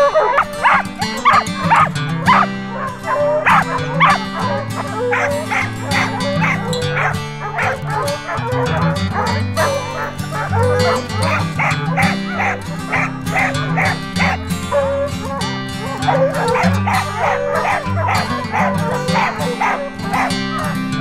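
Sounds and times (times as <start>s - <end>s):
background music: 0.0s - 21.0s
dogs barking: 0.0s - 21.0s.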